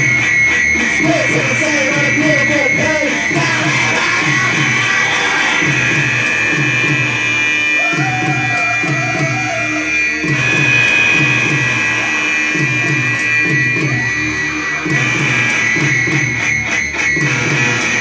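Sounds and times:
live band music: 0:00.0 - 0:18.0.

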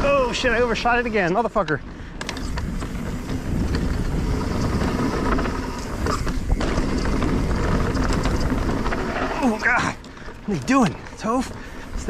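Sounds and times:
tyres rumbling on dirt: 0:00.0 - 0:12.0
bike clicks and rattles: 0:01.2 - 0:12.0.

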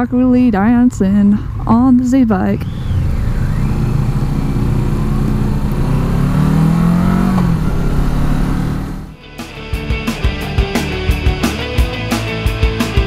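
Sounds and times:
motorcycle engine accelerating: 0:00.7 - 0:09.2
electronic rock music: 0:07.6 - 0:13.0.

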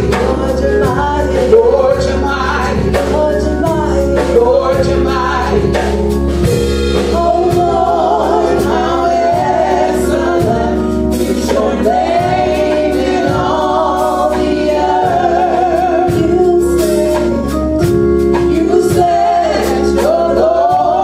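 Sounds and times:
amplified instrumental accompaniment: 0:00.0 - 0:21.0
women singing gospel: 0:00.0 - 0:21.0.

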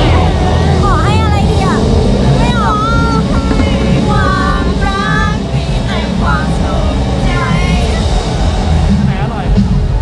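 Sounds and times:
high-pitched swooping voices: 0:00.0 - 0:08.8
dense low rumble: 0:00.0 - 0:10.0.

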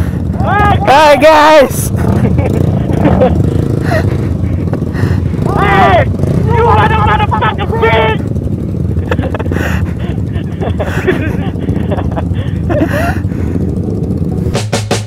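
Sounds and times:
motorcycle engine running: 0:00.0 - 0:15.0
person calling out: 0:00.4 - 0:01.8, 0:05.4 - 0:08.2.

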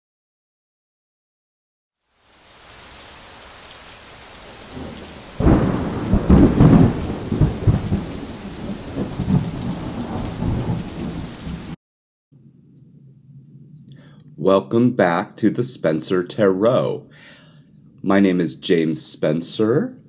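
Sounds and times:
steady rain: 0:02.0 - 0:11.8
thunderclap rumbling: 0:04.3 - 0:11.8.

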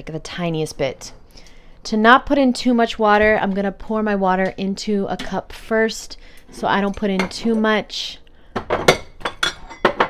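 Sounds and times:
dishware clinking: 0:08.6 - 0:10.0.

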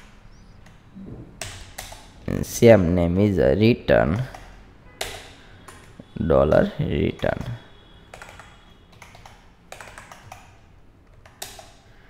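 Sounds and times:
computer keyboard typing: 0:01.4 - 0:02.2, 0:04.2 - 0:06.0, 0:08.1 - 0:11.8.

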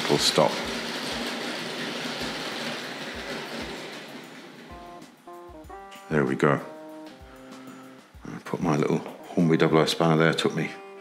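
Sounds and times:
model train motor and wheels rushing: 0:00.0 - 0:05.3
background music: 0:00.0 - 0:11.0.

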